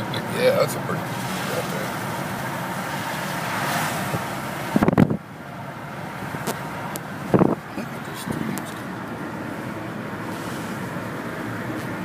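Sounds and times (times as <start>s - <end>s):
car road noise from inside: 0.0s - 12.0s.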